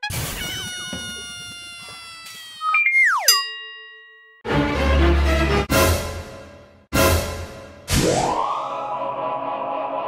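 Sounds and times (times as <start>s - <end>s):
tone sliding down in pitch: 2.6s - 3.4s
downward-gliding whistle: 8.2s - 10.0s.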